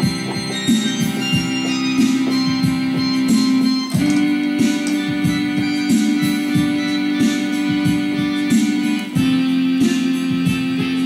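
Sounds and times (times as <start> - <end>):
electronic keyboard playing: 0.0 - 11.0.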